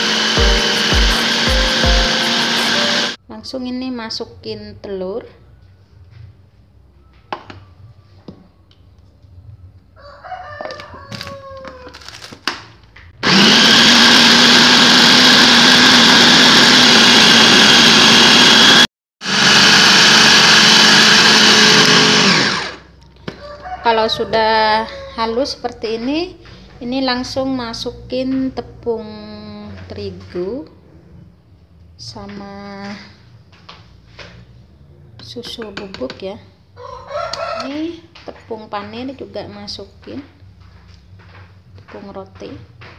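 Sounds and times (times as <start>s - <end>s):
electric food chopper motor whine: 0.0s - 3.2s, 13.2s - 22.9s.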